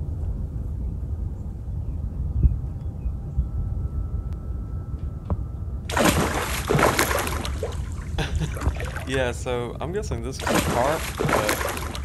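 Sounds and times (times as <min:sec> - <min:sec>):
fish splashing in water: 0:05.9 - 0:09.1, 0:10.4 - 0:12.0
water sloshing and trickling: 0:05.9 - 0:09.5, 0:10.2 - 0:12.0.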